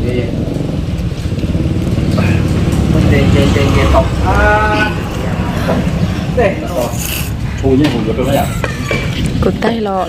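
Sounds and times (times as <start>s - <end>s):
people talking: 2.2s - 5.6s, 6.3s - 10.0s.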